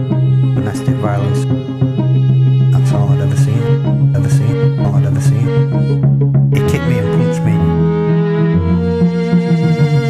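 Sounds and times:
violin bowing: 0:00.0 - 0:10.0.

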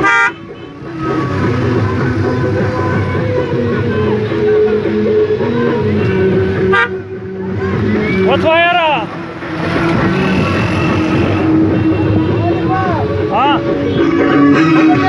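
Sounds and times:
car horns honking: 0:00.0 - 0:01.6, 0:05.8 - 0:07.2, 0:08.4 - 0:15.0
engine and road noise: 0:00.0 - 0:15.0
voices calling out: 0:00.0 - 0:15.0.

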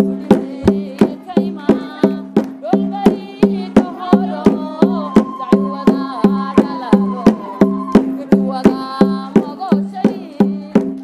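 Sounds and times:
person singing: 0:00.0 - 0:11.0
dance music drumbeat: 0:00.2 - 0:11.0.

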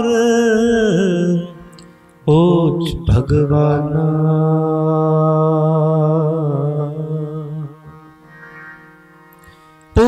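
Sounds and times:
man singing long note: 0:00.0 - 0:08.0
harmonium: 0:00.0 - 0:10.0.

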